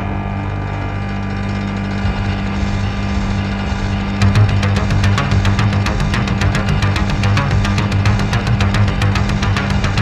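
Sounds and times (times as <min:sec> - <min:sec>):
faint low pulse: 0:00.0 - 0:10.0
synthesizer drone: 0:00.0 - 0:10.0.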